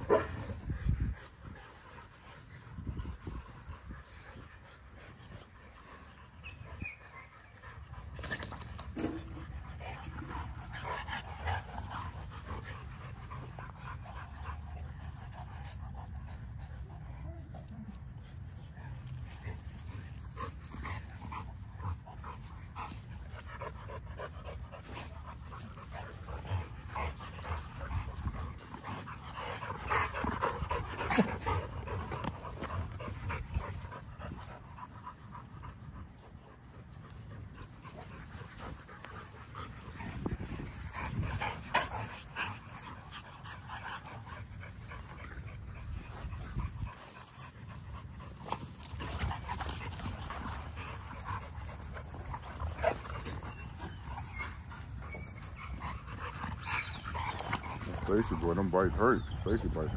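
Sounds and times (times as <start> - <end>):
dogs panting: 0.0 - 59.9
dogs scuffling on grass: 7.0 - 59.9.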